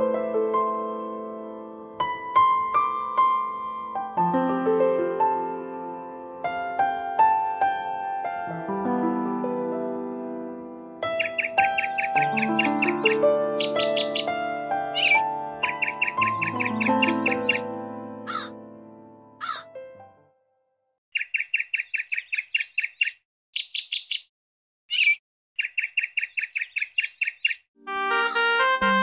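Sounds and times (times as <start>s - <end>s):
sustained keyboard music: 0.0s - 20.3s, 27.8s - 29.0s
bird chirping: 11.1s - 17.7s, 21.1s - 24.3s, 24.9s - 28.5s
sharp downward bird calls: 11.2s - 17.7s, 18.3s - 18.6s, 19.4s - 19.7s, 21.2s - 24.3s, 24.9s - 29.0s.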